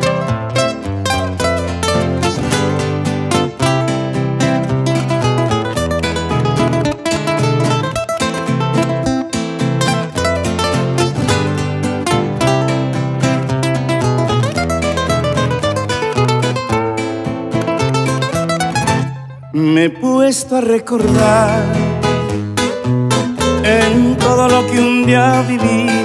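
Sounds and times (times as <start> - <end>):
acoustic guitar melodic lead: 0.0 - 26.0
guitar bass notes and chords: 0.0 - 26.0.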